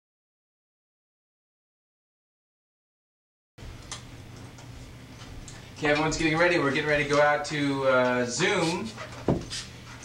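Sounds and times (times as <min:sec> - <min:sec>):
camcorder running hum: 0:03.6 - 0:10.0
man's voice: 0:05.8 - 0:09.0.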